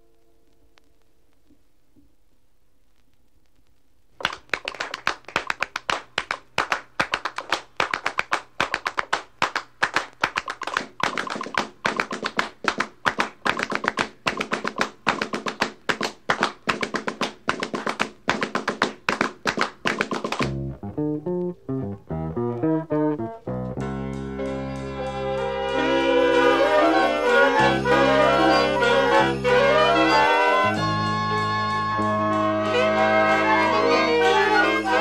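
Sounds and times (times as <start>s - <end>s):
low bass line: 20.4s - 25.6s
sustained pitched notes: 20.4s - 35.0s.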